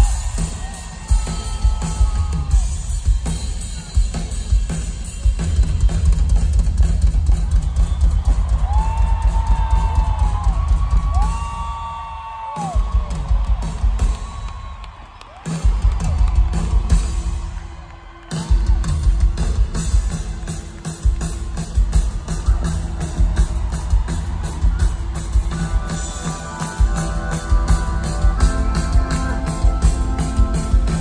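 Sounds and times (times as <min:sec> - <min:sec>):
rock drum kit playing fast: 0:00.0 - 0:31.0.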